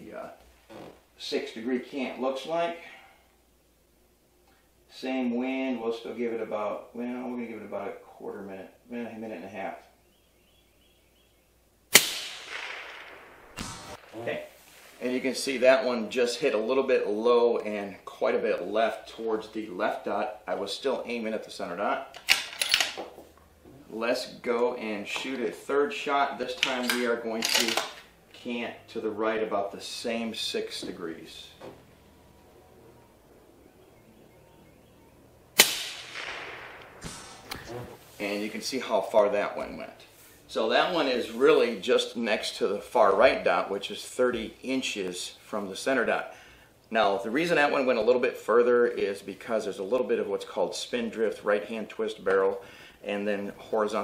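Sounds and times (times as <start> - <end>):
suppressed rifle shot: 11.9 - 14.4, 35.6 - 37.8
burst of noise: 12.0 - 14.9, 35.6 - 38.2.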